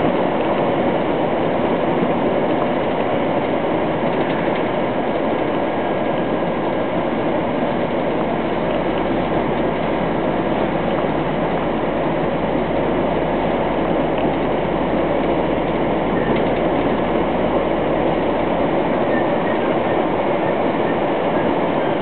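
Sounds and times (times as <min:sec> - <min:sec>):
truck engine and road rumble: 0:00.0 - 0:22.0.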